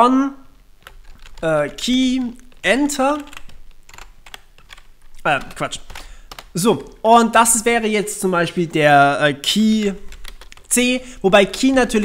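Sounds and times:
computer keyboard typing: 0.8s - 12.0s.

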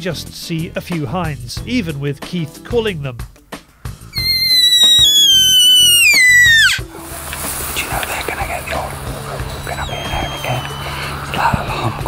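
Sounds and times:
deer call whistle sliding down: 4.2s - 6.8s.

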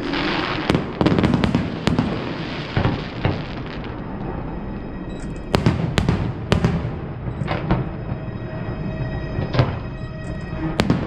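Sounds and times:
fireworks bangs: 0.0s - 4.4s, 5.5s - 8.8s, 9.4s - 11.0s.

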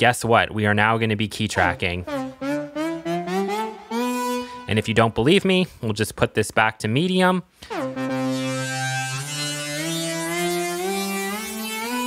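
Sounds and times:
buzzy synthesizer lead: 1.6s - 5.4s, 7.7s - 12.0s.

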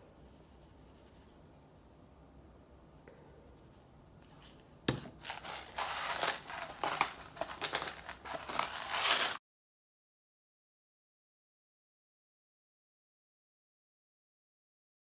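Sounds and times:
pepper grinder crunching: 5.2s - 9.4s.

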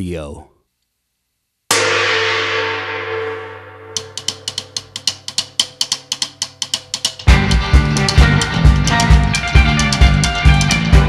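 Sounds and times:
cymbal crash ringing out: 1.7s - 5.8s
quick percussive ticks: 4.0s - 11.0s
rock band playing: 7.1s - 11.0s.

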